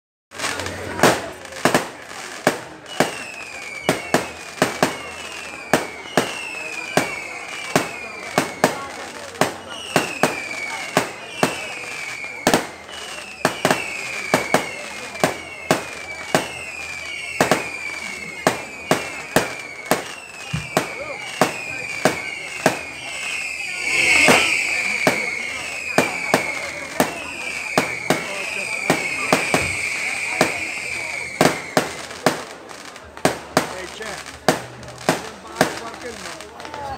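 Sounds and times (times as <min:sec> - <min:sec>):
falling firework whistle: 0:00.3 - 0:36.9
fireworks bangs: 0:00.3 - 0:36.9.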